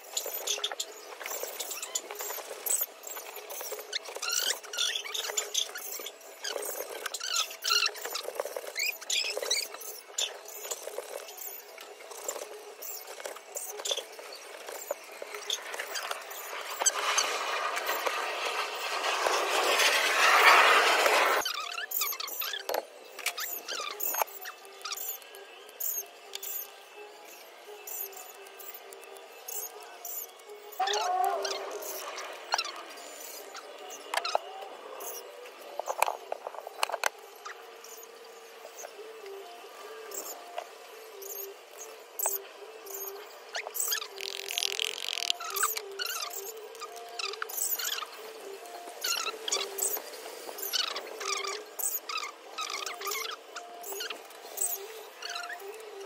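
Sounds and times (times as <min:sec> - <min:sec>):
high squeaky chirps: 0:00.0 - 0:18.1, 0:21.4 - 0:48.4, 0:49.0 - 0:56.0
rush of noise: 0:16.6 - 0:21.4.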